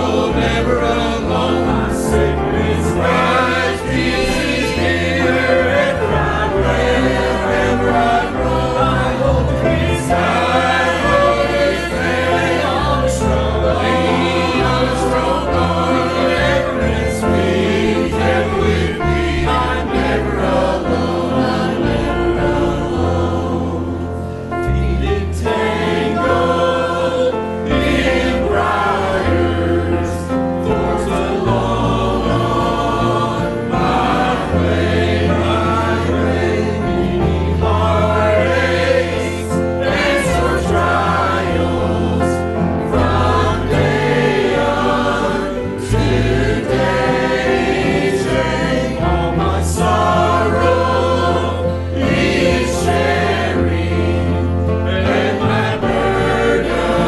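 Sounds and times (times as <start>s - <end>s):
choir singing a hymn: 0.0s - 57.0s
instrumental accompaniment: 0.0s - 57.0s.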